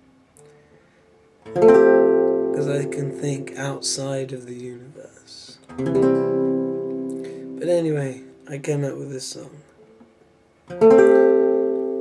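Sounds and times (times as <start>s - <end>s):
guitar strumming: 0.4s - 12.0s.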